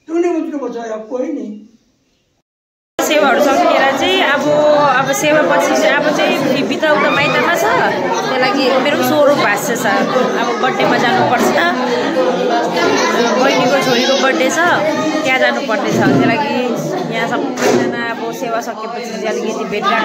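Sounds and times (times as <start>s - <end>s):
woman talking close to microphone: 3.0s - 11.8s, 13.4s - 20.0s
crowd chatter in a hall: 3.0s - 20.0s.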